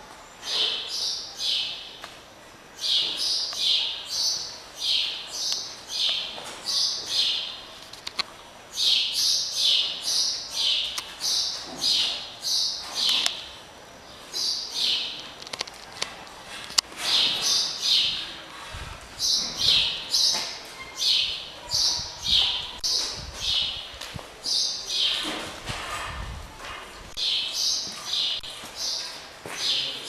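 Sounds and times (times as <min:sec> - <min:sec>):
bird chirping: 0:02.8 - 0:07.7, 0:08.7 - 0:15.3, 0:17.0 - 0:18.4, 0:19.2 - 0:25.3, 0:27.1 - 0:30.0.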